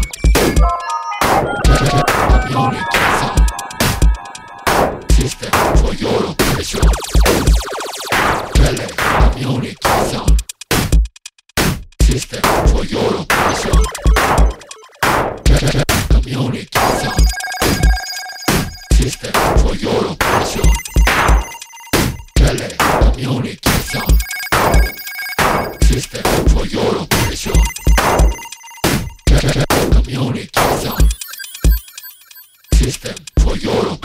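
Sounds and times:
rapidly pulsing ring-like tone: 0:00.0 - 0:08.5, 0:13.6 - 0:15.0, 0:17.0 - 0:19.7, 0:20.4 - 0:22.7, 0:23.8 - 0:26.2, 0:27.2 - 0:29.3, 0:30.9 - 0:33.0
electronic music: 0:00.0 - 0:09.4, 0:13.4 - 0:15.6, 0:16.8 - 0:23.0, 0:23.8 - 0:26.5, 0:27.1 - 0:29.7, 0:30.8 - 0:33.0
sharp noisy percussion hits: 0:01.2 - 0:09.4, 0:13.4 - 0:15.8, 0:16.8 - 0:29.8.

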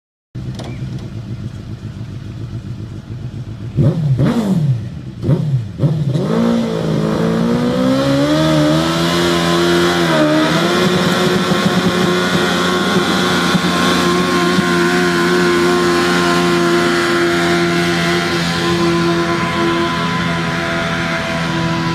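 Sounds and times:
tractor engine revving: 0:00.4 - 0:21.9.

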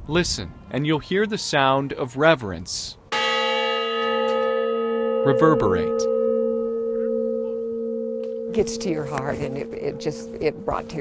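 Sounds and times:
large bell ringing: 0:03.1 - 0:11.0.

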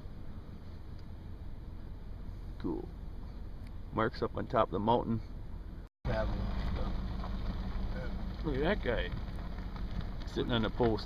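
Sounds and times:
vehicle engine idling: 0:00.0 - 0:04.0, 0:05.2 - 0:11.0.

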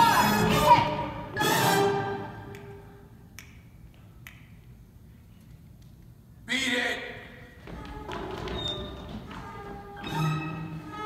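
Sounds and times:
finger snaps: 0:02.5 - 0:04.8.

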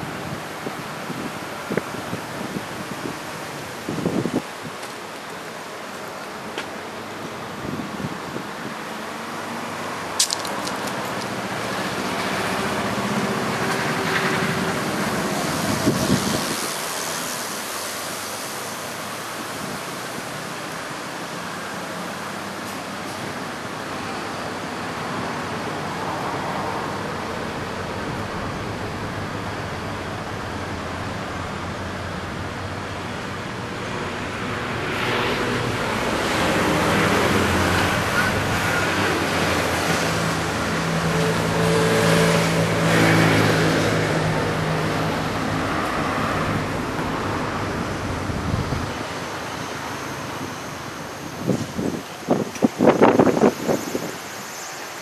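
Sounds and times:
city road traffic: 0:00.0 - 0:55.0
vehicle passing: 0:33.9 - 0:49.1.

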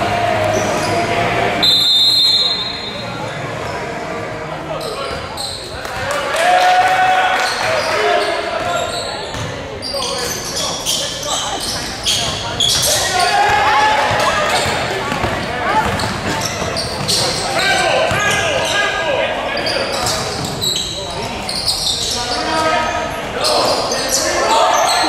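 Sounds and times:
echoing voices: 0:00.0 - 0:25.0.

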